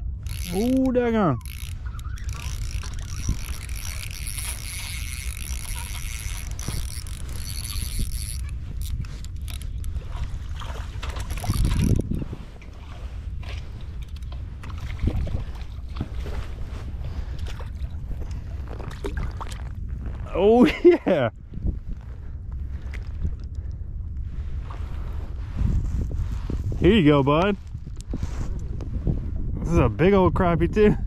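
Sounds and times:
fishing reel clicking: 0.0s - 10.0s, 11.2s - 12.2s
rod and line handling: 0.0s - 20.8s, 21.9s - 29.0s
wind rumble on microphone: 0.0s - 31.0s.

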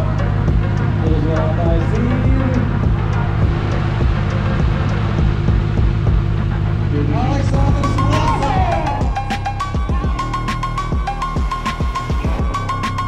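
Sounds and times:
car engines idling: 0.0s - 13.0s
person speaking: 7.0s - 9.2s.

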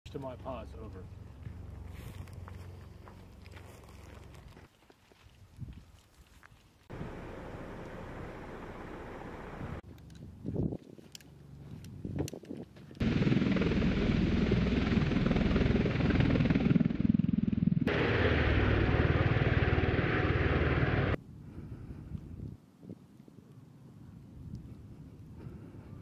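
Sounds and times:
aircraft rotor beat: 6.9s - 9.8s, 13.0s - 21.2s.

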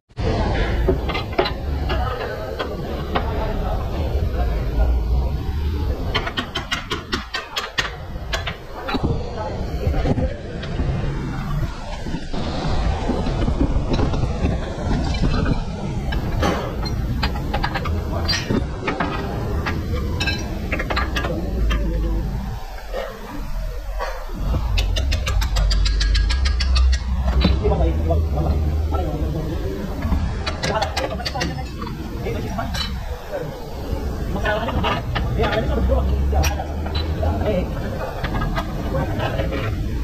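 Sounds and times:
indistinct voices talking: 0.1s - 40.0s
rapid metallic clicks: 24.4s - 33.1s.

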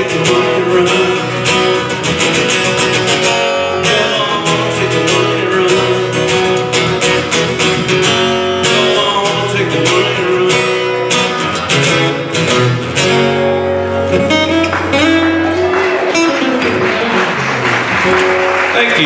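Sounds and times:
acoustic guitars strumming: 0.0s - 19.0s.

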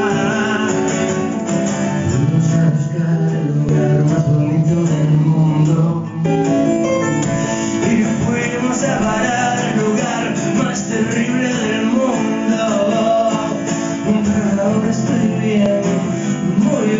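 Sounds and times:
man singing: 0.0s - 6.8s, 7.4s - 16.9s
strummed acoustic guitar: 0.0s - 16.9s.

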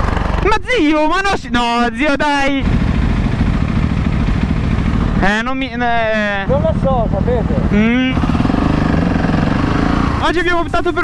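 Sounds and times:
motorcycle engine pulsing: 0.0s - 0.9s, 2.6s - 11.0s.

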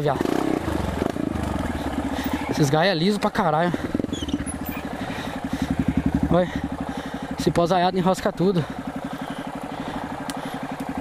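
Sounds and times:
motorcycle engine at low revs: 0.0s - 11.0s.

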